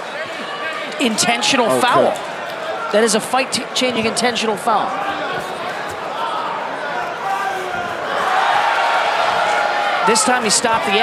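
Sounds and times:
arena crowd shouting and talking: 0.0s - 11.0s.

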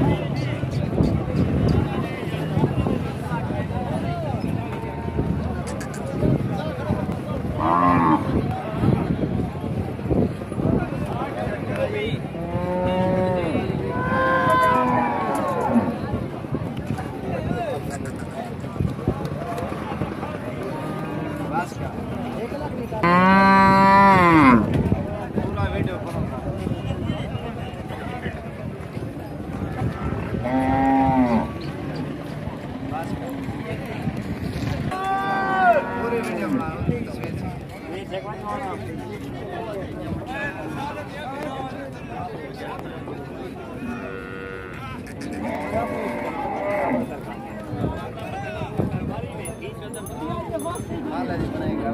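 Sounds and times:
murmur of voices: 0.0s - 51.9s.

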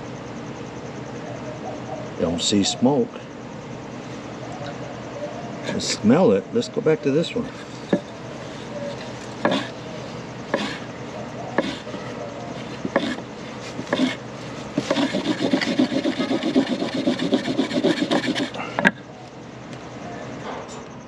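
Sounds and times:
wooden block rubbing on board: 7.4s - 9.8s, 10.5s - 10.9s, 11.6s - 18.6s
sharp wooden knock: 9.4s - 9.7s.

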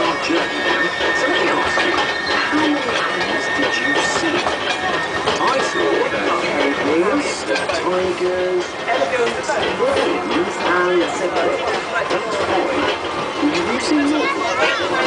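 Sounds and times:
passengers chattering: 0.0s - 15.0s
small train running on track: 0.0s - 15.0s.

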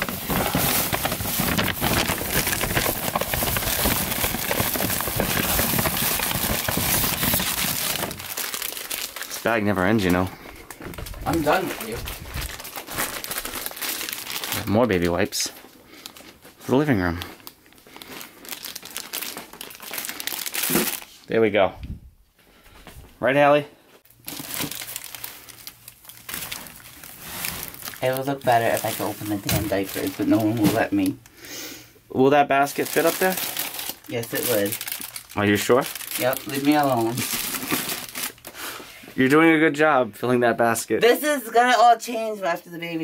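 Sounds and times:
plastic bag rustling and crinkling: 0.0s - 21.3s, 24.1s - 31.2s, 32.6s - 38.6s.

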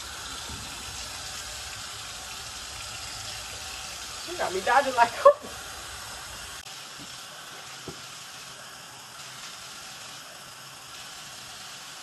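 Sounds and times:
water running from a tap: 0.0s - 12.0s.

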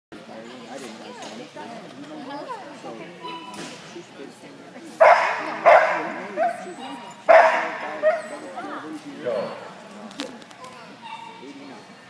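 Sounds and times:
dog barking: 5.0s - 6.7s, 7.3s - 8.4s
dog yipping: 5.0s - 8.8s, 11.0s - 11.9s.

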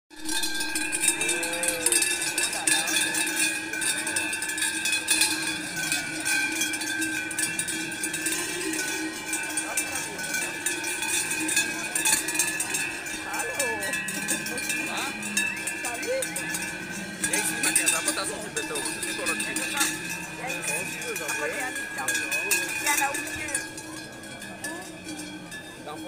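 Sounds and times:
cowbells clanging: 0.1s - 26.0s.

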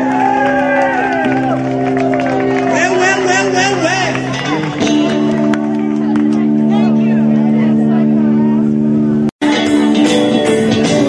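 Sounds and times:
amplified band chord drone: 1.6s - 11.0s
people talking and calling: 2.3s - 11.0s.

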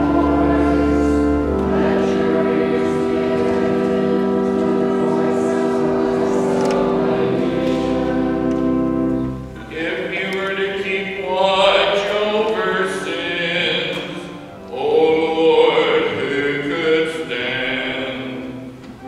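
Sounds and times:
church music long held chords: 0.0s - 19.0s.

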